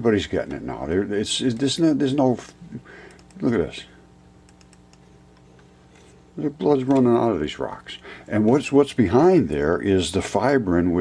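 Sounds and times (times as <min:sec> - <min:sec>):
low electrical hum: 0:00.0 - 0:11.0
computer mouse clicks: 0:03.1 - 0:03.5, 0:04.5 - 0:05.0.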